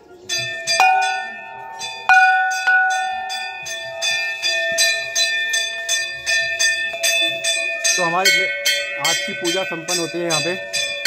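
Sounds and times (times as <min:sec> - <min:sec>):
gong struck with mallet: 0:00.5 - 0:05.2.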